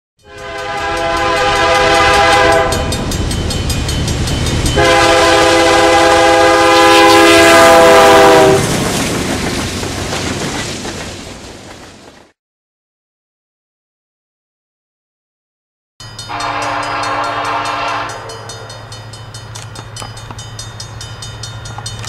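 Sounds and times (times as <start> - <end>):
locomotive air horn blasts: 0.2 - 3.1, 4.8 - 8.6, 16.3 - 18.7
train rumble and wheel clicks: 0.2 - 12.4, 16.1 - 22.0.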